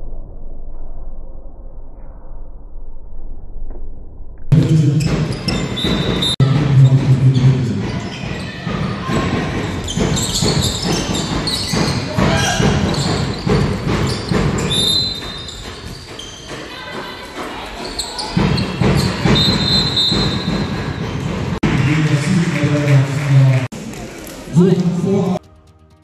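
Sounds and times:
ball bouncing in hall: 4.5s - 25.4s
players' voices: 4.5s - 25.4s
shoes squeaking on court: 4.6s - 16.8s, 17.6s - 21.4s.

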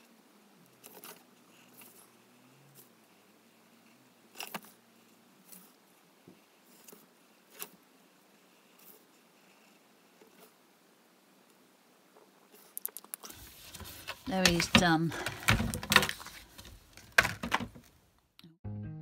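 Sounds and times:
paper rustling: 12.5s - 17.8s.

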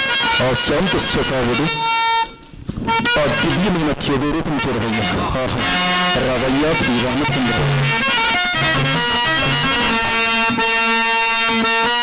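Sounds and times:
harmonium chord: 0.0s - 12.0s.

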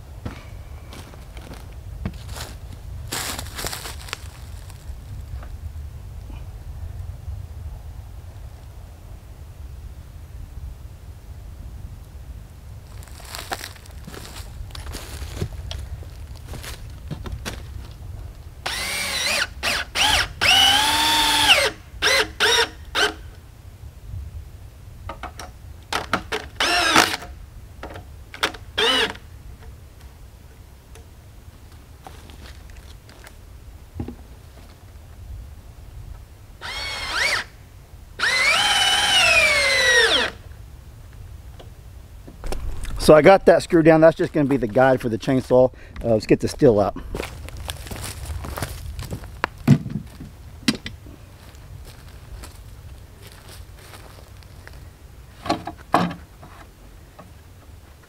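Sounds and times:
cordless drill driving screws: 18.6s - 23.2s, 26.6s - 27.2s, 28.8s - 29.2s, 36.6s - 37.5s, 38.2s - 40.4s.

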